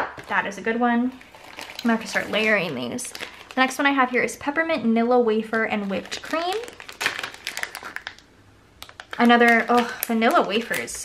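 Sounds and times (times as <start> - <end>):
plastic bag crinkling: 0.2 - 4.3, 5.4 - 11.0.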